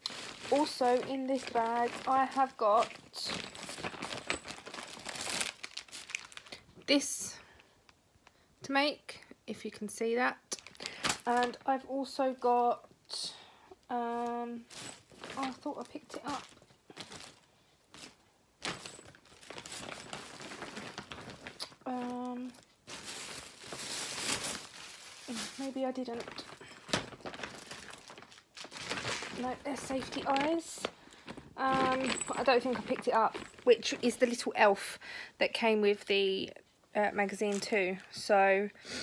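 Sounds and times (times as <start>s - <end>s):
bag crinkling: 0.0s - 6.7s, 10.5s - 11.7s, 14.2s - 34.5s.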